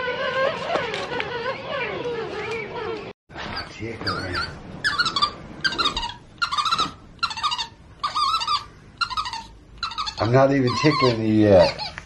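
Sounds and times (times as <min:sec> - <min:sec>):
monkey squeaking: 0:03.5 - 0:12.0.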